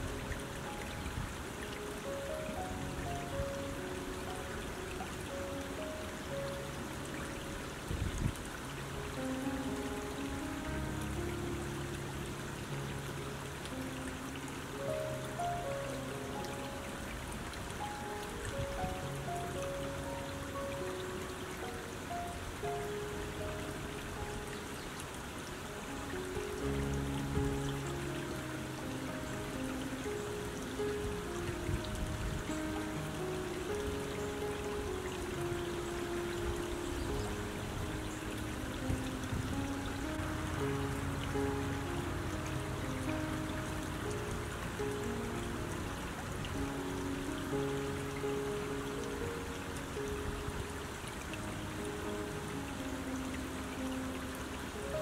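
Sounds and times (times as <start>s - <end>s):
creek running over stones: 0.0s - 55.0s
slow gentle music: 0.0s - 55.0s.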